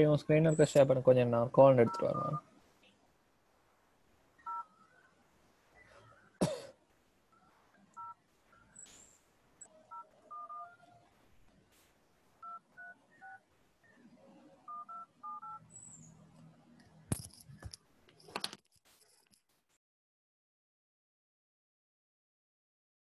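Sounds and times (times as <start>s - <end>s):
phone keypad touch-tones: 1.8s - 2.4s, 4.4s - 4.7s, 8.0s - 8.2s, 9.9s - 10.8s, 14.7s - 15.6s.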